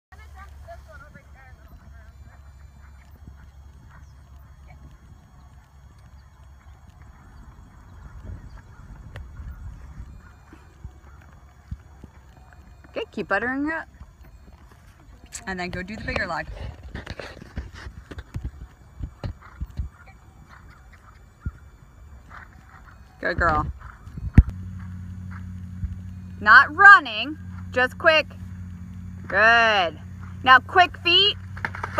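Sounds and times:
hoofbeats on grass: 0:00.1 - 0:29.4, 0:30.0 - 0:31.9
steady low hum: 0:00.1 - 0:31.9
steady low rumble: 0:00.1 - 0:31.9.

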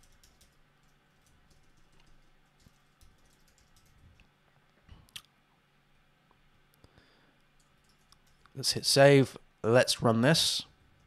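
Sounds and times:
faint keyboard typing: 0:00.0 - 0:05.3, 0:06.7 - 0:08.6.

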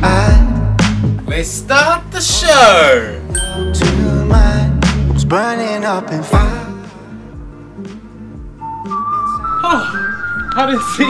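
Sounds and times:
background music: 0:00.0 - 0:11.0
person whistling notes: 0:08.6 - 0:11.0.

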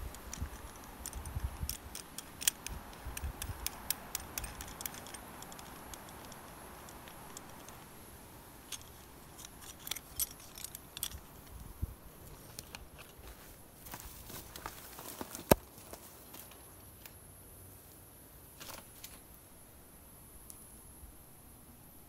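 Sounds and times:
metal coupling clinks and clicks: 0:00.0 - 0:07.9, 0:08.6 - 0:11.6.

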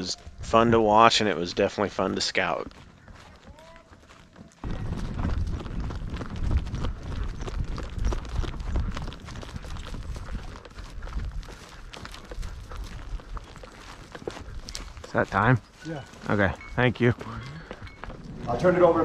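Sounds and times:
horse hooves clip-clopping on dirt: 0:00.0 - 0:19.0.

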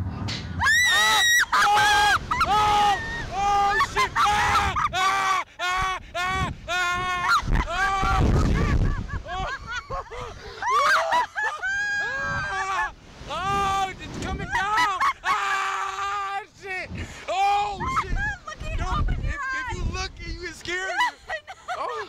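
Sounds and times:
man screaming: 0:00.9 - 0:08.3.

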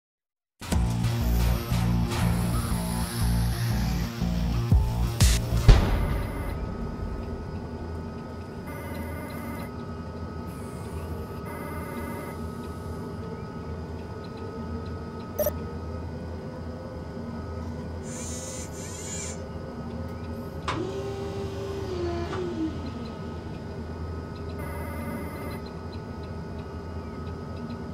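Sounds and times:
sweep and falling whine: 0:00.6 - 0:11.6, 0:12.3 - 0:27.5
low electronic drone: 0:00.6 - 0:27.9
electronic chirping: 0:02.2 - 0:09.8, 0:15.4 - 0:15.6.

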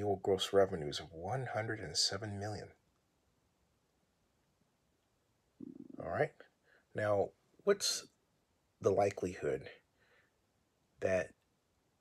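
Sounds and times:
man speaking: 0:00.0 - 0:02.8, 0:05.6 - 0:06.4, 0:07.0 - 0:08.0, 0:08.8 - 0:09.8, 0:11.0 - 0:11.3.

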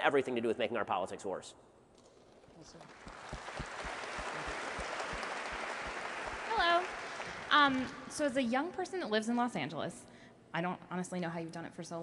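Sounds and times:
audience applause: 0:02.9 - 0:07.6.

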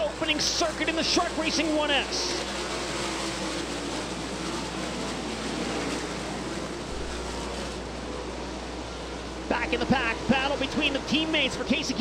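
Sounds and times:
race car engines running together: 0:00.0 - 0:12.0.

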